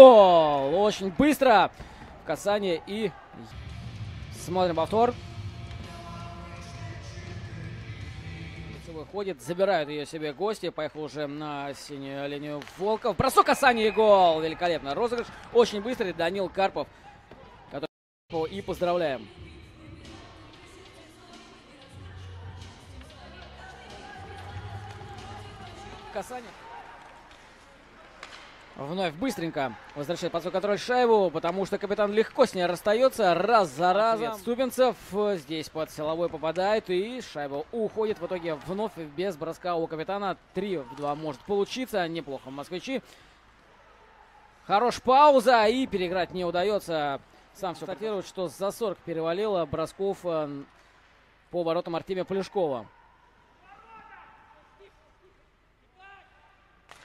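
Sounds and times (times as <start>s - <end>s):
faint ice hockey arena ambience: 0.0s - 57.0s
hockey stick striking puck: 28.2s - 28.8s.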